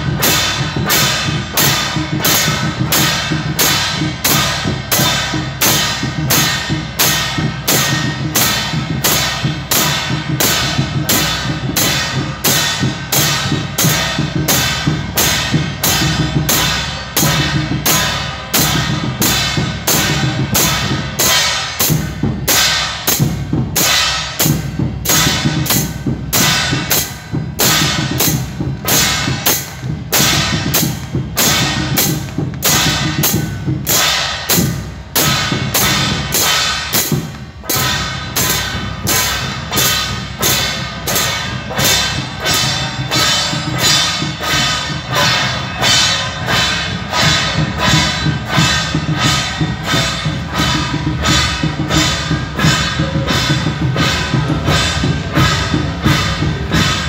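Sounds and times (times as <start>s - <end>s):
gongs struck with sticks: 0.0s - 57.0s
hand cymbals clashing: 0.0s - 57.0s
low drum-like pulse: 0.0s - 57.0s.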